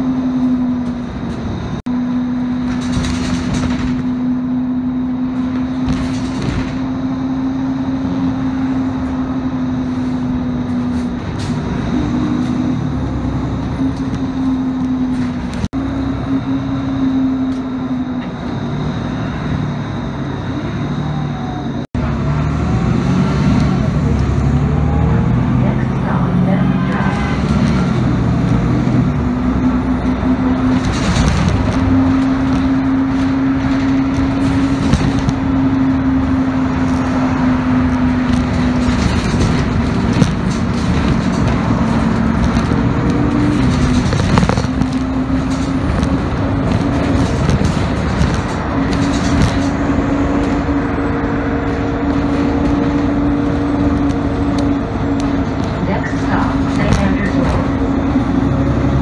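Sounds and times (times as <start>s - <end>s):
bus engine and road noise: 0.0s - 59.0s
drivetrain whine: 0.0s - 59.0s.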